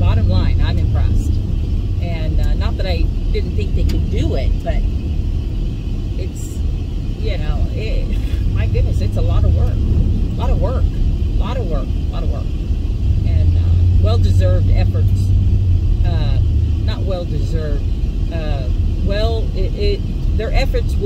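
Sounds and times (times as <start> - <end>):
woman talking: 0.0 - 1.4, 2.0 - 4.9, 6.2 - 6.6, 7.2 - 12.5, 13.2 - 15.3, 16.0 - 21.0
truck rumbling: 0.0 - 21.0.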